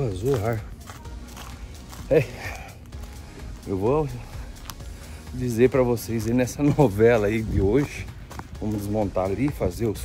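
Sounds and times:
low steady background sound: 0.0s - 10.0s.

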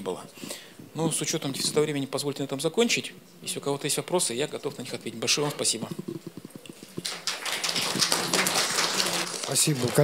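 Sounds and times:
audience applauding: 7.0s - 10.0s.

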